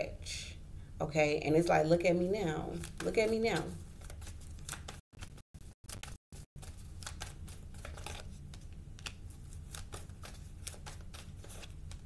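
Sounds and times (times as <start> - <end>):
low steady hum: 0.0 - 4.7
cards being shuffled: 2.7 - 12.0.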